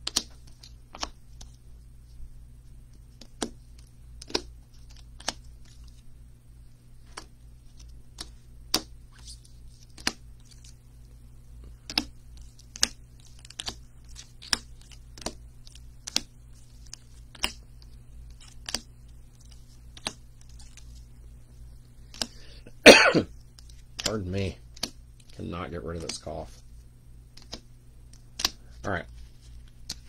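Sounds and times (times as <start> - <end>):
person coughing: 22.7 - 23.3.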